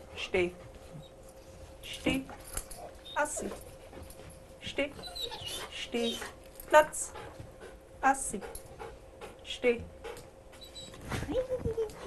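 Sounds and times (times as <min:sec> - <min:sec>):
dog whining: 0:05.0 - 0:06.3, 0:10.6 - 0:11.2.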